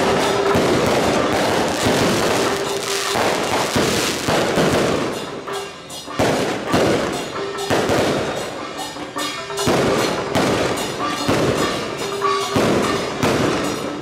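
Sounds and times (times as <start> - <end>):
firecrackers crackling: 0.0 - 14.0
music: 0.0 - 14.0.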